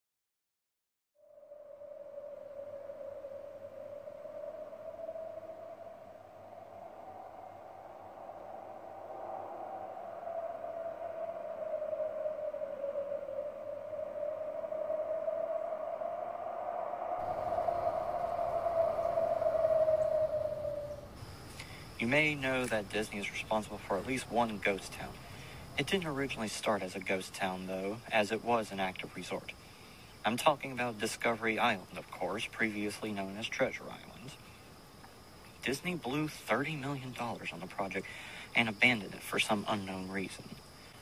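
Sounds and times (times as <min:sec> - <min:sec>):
eerie drone tone: 0:01.2 - 0:28.0
faint hiss: 0:01.8 - 0:41.0.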